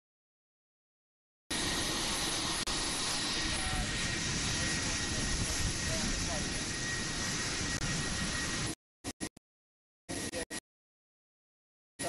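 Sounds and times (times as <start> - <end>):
aircraft engine noise: 1.5 - 9.2, 10.1 - 10.6.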